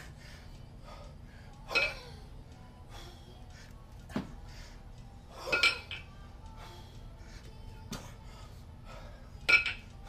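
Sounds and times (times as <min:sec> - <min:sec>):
kettlebells clanking together: 0:09.5 - 0:09.8.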